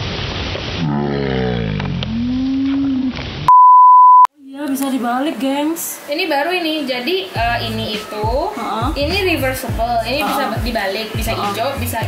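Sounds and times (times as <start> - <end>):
electronic beep: 3.5 - 4.3
surf hiss: 4.8 - 12.0.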